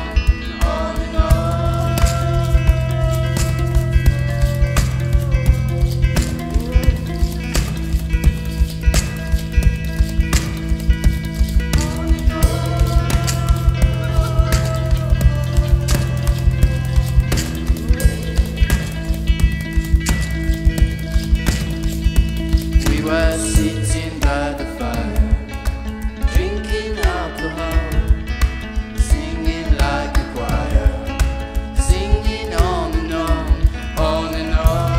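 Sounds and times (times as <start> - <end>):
electric guitar: 0.0 - 34.9
fast clicking percussion beat: 0.0 - 34.9.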